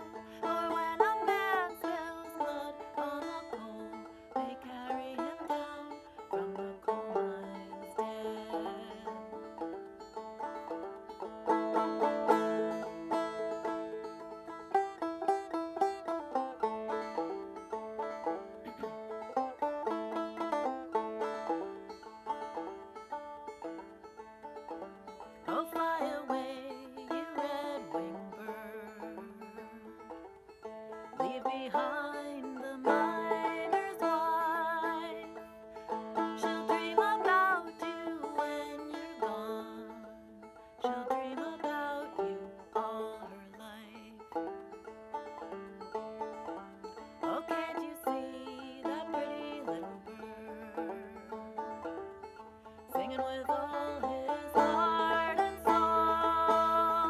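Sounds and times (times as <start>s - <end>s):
woman singing: 0.0s - 9.6s, 25.4s - 30.0s, 31.0s - 44.4s, 47.2s - 51.2s, 52.9s - 57.0s
banjo plucked notes: 0.0s - 57.0s.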